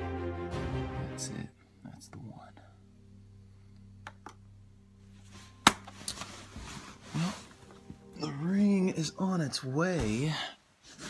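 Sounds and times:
steady low hum: 0:01.5 - 0:08.8
person whispering: 0:01.8 - 0:02.8.

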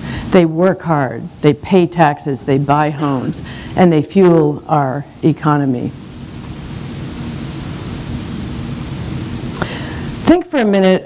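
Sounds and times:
steady hiss: 0:00.0 - 0:11.0
person speaking: 0:02.7 - 0:04.1.

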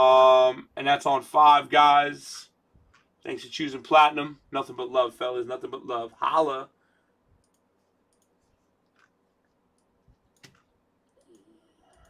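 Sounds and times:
computer mouse clicks: 0:07.4 - 0:12.0.

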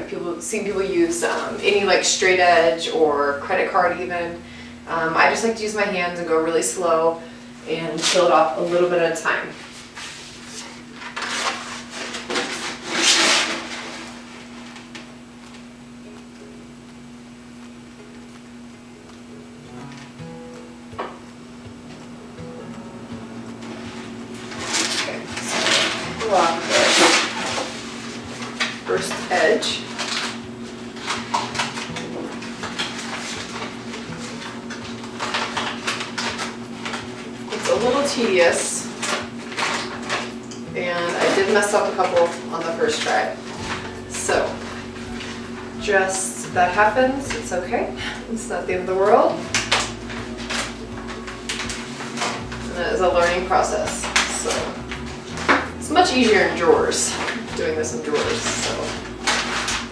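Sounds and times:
faint background music: 0:00.0 - 0:10.6, 0:14.6 - 0:59.9
steady low hum: 0:00.0 - 0:59.9
contact paper rustling and crackling: 0:07.9 - 0:15.7, 0:23.6 - 0:46.2, 0:49.0 - 0:59.9.

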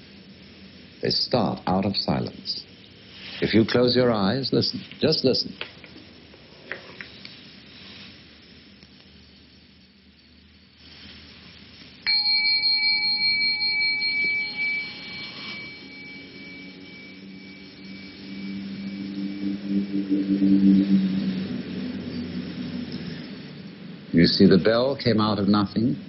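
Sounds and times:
small bell ringing: 0:12.0 - 0:19.5
low ringing tone: 0:12.0 - 0:25.5.

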